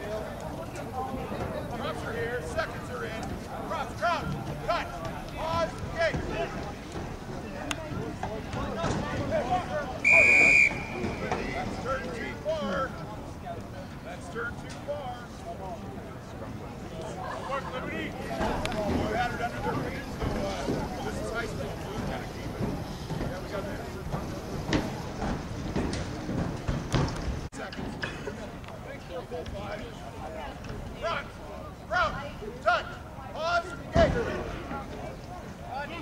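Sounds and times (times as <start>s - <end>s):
players shouting: 9.6s - 12.3s
referee's whistle blast: 10.0s - 11.6s.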